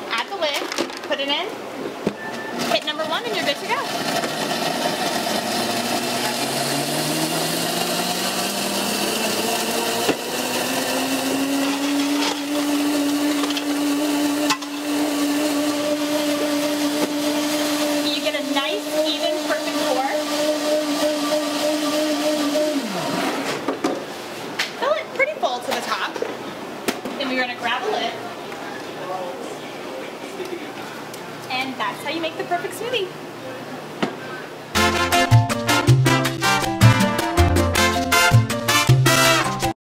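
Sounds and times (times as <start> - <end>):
blender crushing ice: 2.6 - 23.7, 37.8 - 39.8.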